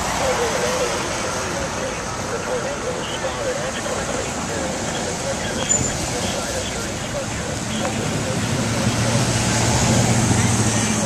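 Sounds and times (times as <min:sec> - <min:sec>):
people's voices: 0:00.0 - 0:11.0
steady traffic noise: 0:00.0 - 0:11.0
car passing close by: 0:08.0 - 0:11.0.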